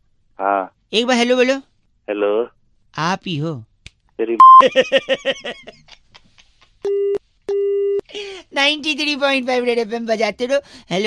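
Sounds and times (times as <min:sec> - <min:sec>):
short sharp beep: 0:04.4 - 0:04.6
telephone busy tone: 0:04.4 - 0:04.6
man laughing: 0:04.6 - 0:06.6.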